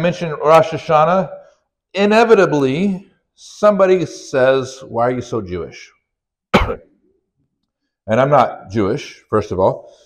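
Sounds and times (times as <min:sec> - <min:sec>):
man coughing: 0:06.6 - 0:06.9.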